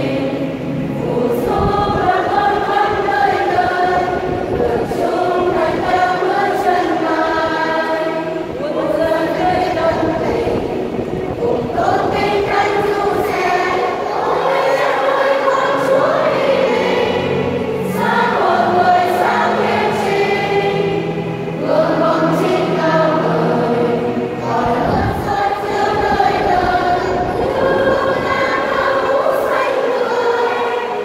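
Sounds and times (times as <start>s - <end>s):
women's choir singing a hymn: 0.0s - 31.0s.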